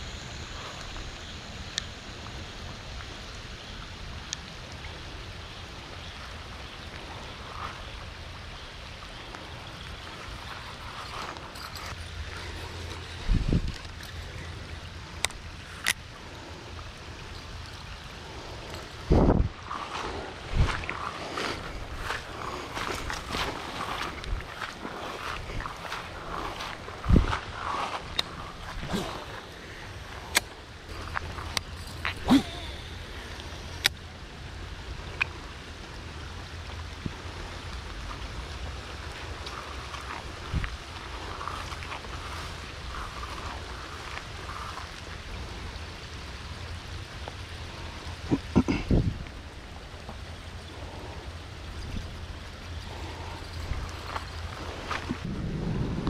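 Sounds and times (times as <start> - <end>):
rain falling on a pond: 0.0 - 27.1, 29.0 - 55.3
handling crackles and rustles: 9.3 - 16.1, 18.5 - 33.9, 51.7 - 55.4.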